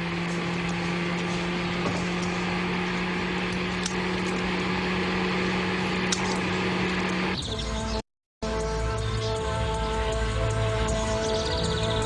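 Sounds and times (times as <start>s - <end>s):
road noise rushing: 0.0s - 7.4s
truck engine hum: 0.0s - 12.0s.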